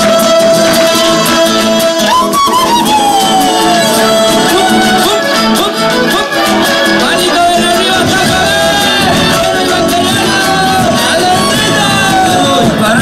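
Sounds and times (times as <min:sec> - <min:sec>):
fiddle melody: 0:00.0 - 0:13.0
folk band playing: 0:00.0 - 0:13.0
guitars: 0:00.0 - 0:13.0.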